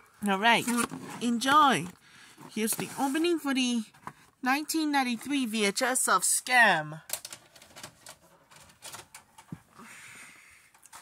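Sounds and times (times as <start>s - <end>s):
tape handling clicks and rattles: 7.1s - 9.6s.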